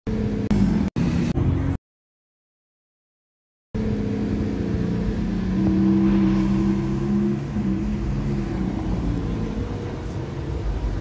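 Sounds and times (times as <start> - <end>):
car engine running: 0.1 - 1.8, 3.8 - 11.0.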